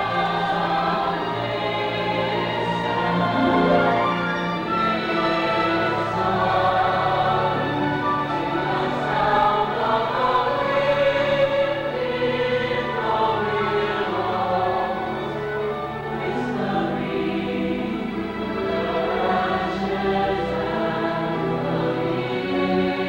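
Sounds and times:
choir singing held chords: 0.0s - 23.0s.

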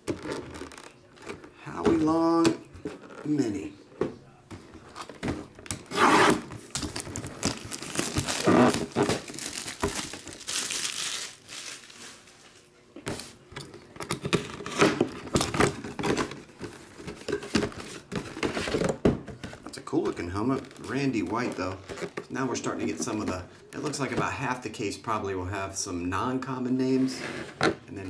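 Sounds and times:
wrapping crinkling and tearing: 4.9s - 12.7s.

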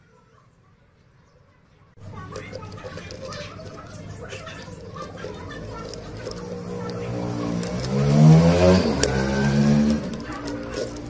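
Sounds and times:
plastic gear squeaking: 2.0s - 11.0s.

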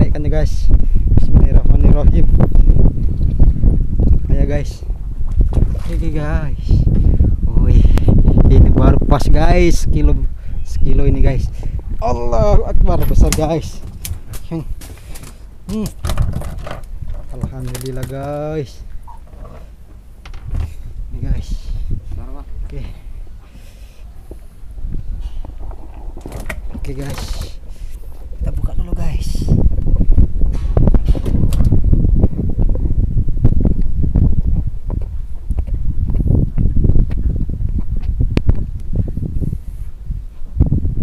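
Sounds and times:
wind buffeting microphone: 0.0s - 41.0s
fish thrashing on boat deck: 13.8s - 18.4s
low steady rumble: 16.4s - 41.0s.

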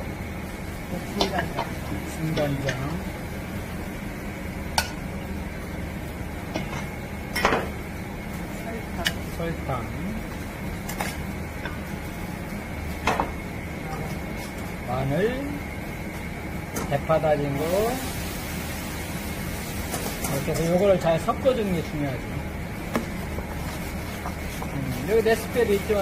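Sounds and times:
steady background hum: 0.0s - 26.0s.

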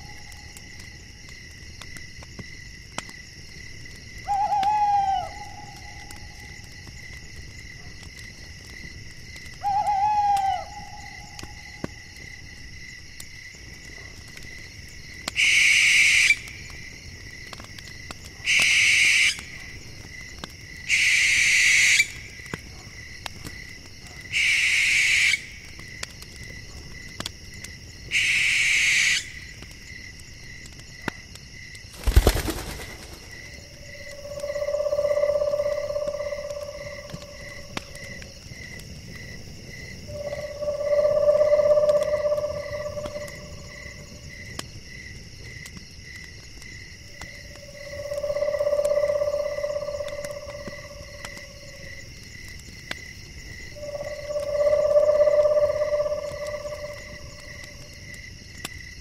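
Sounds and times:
crickets chirping: 0.0s - 59.0s
owl screeches: 18.5s - 19.4s, 20.9s - 22.2s, 24.3s - 25.5s, 28.1s - 29.3s
long low calls: 33.7s - 38.3s, 40.0s - 44.2s, 47.4s - 52.0s, 53.7s - 57.9s.

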